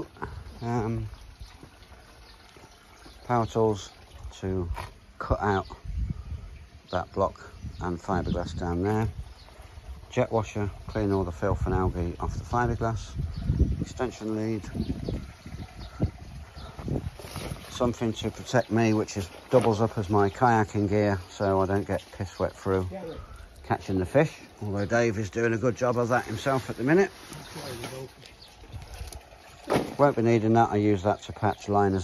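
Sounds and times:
running water: 0.0 - 32.0.

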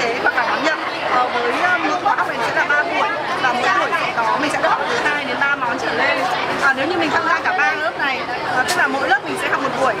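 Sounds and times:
crowd chatter: 0.0 - 10.0
woman talking: 0.0 - 10.0.

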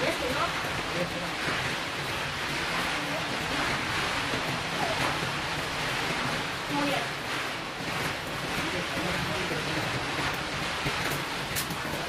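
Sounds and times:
rushing outdoor hiss: 0.0 - 12.0.

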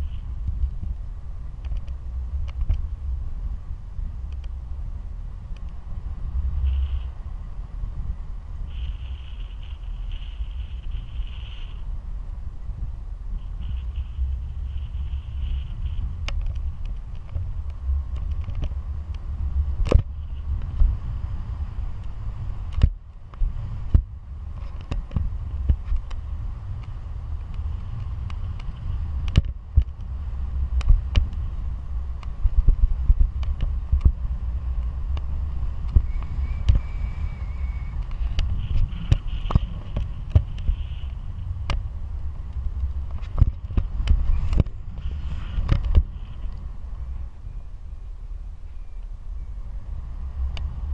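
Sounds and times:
sharp crackles of wind buffeting: 0.0 - 50.9
wind rushing over microphone: 0.0 - 50.9.

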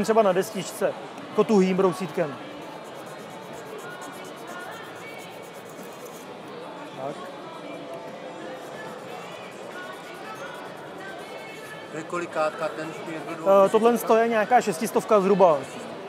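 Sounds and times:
faint music: 0.0 - 16.0
indistinct crowd chatter: 0.0 - 16.0.

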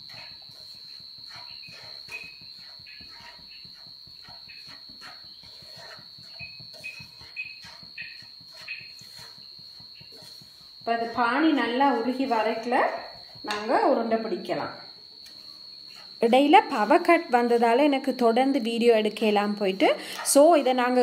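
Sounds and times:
spatula scraping pan: 0.0 - 14.1, 15.3 - 19.3, 20.0 - 21.0
faint high whine: 0.0 - 21.0.

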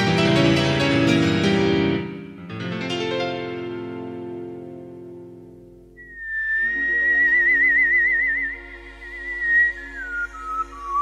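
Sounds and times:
person whistling a melody: 6.0 - 11.0.

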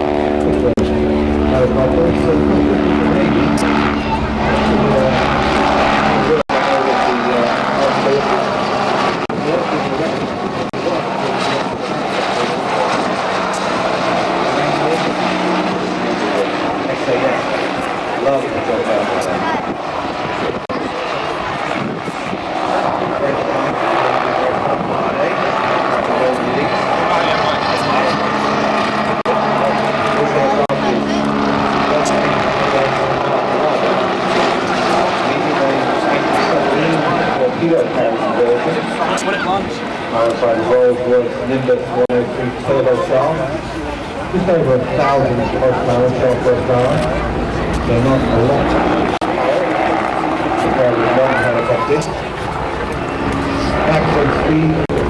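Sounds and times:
helicopter engine and rotor: 0.0 - 55.0.

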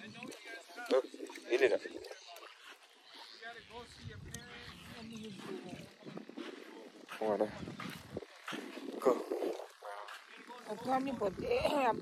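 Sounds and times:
faint voices talking: 0.0 - 12.0
wind buffeting microphone: 3.7 - 12.0.

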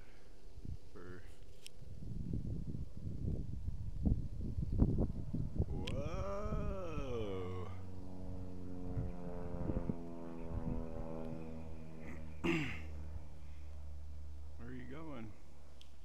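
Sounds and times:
model airplane motor droning: 4.9 - 16.0.

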